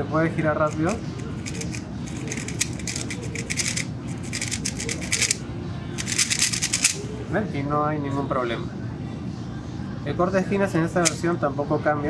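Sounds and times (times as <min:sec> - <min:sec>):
puzzle cube clicking: 0:00.7 - 0:05.4, 0:06.0 - 0:07.0.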